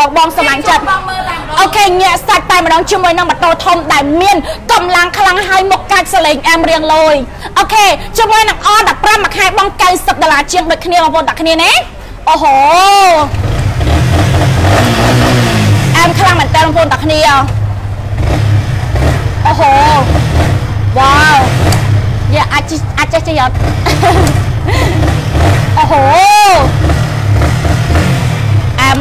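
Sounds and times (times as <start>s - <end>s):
motorcycle engine revving: 13.2s - 29.0s.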